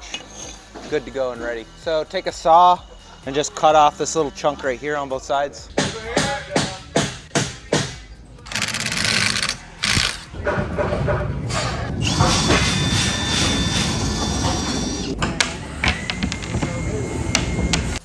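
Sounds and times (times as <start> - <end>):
cordless drill whining: 12.0 - 15.1.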